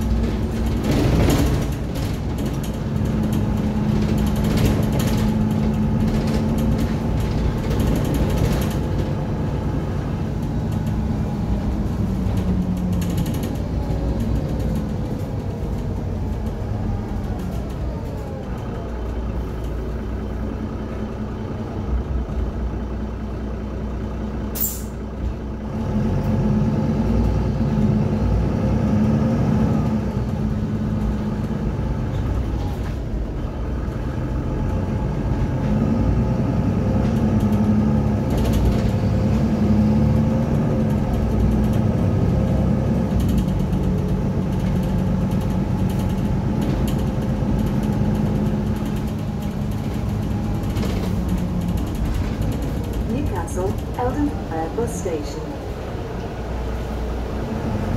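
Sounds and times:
bus diesel engine: 0:00.0 - 0:57.9.

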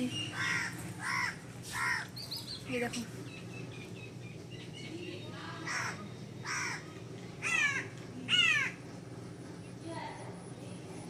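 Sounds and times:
faint background hum: 0:00.0 - 0:11.0
crow cawing: 0:00.3 - 0:02.2, 0:05.6 - 0:08.8.

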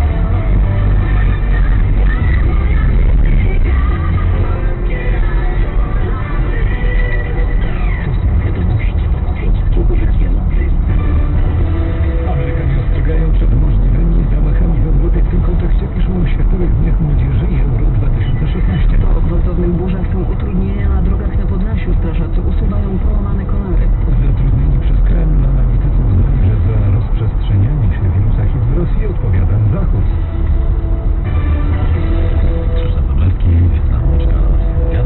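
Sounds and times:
car radio music with singing: 0:00.0 - 0:35.0
road and engine rumble: 0:00.0 - 0:35.0.

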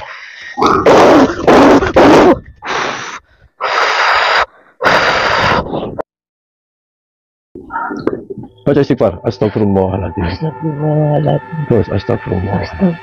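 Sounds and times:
person breathing loudly: 0:02.6 - 0:06.0.

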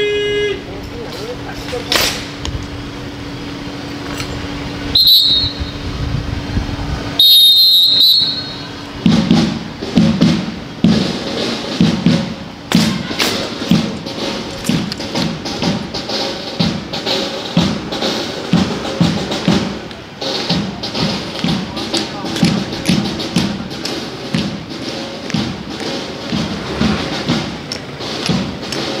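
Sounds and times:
steady low hum: 0:00.0 - 0:07.2
high-pitched whistle blasts: 0:04.9 - 0:05.9, 0:07.2 - 0:08.8
percussive thumping beat: 0:09.0 - 0:16.9, 0:20.5 - 0:28.9.

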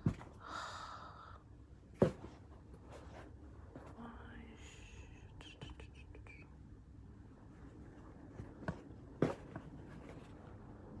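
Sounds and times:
faint whispering: 0:03.9 - 0:06.7.

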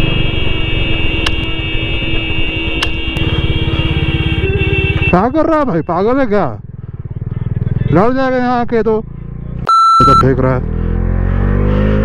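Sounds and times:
motorcycle engine running: 0:00.0 - 0:09.6.

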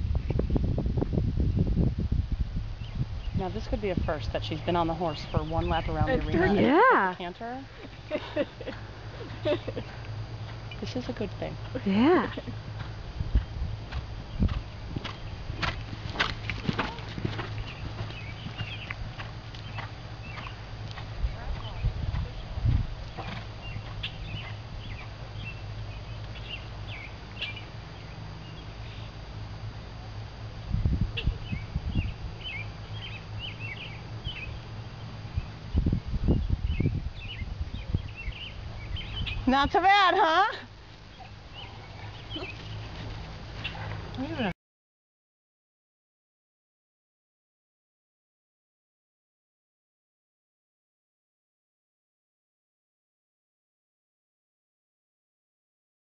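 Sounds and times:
steady low rumble: 0:00.0 - 0:44.5
horse hooves trotting on sand: 0:07.9 - 0:27.8, 0:40.8 - 0:44.5.

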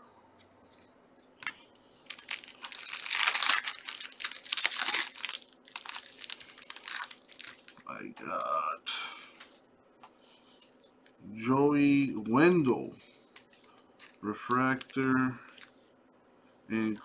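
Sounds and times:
foil pack crackling and tearing: 0:02.0 - 0:07.8.

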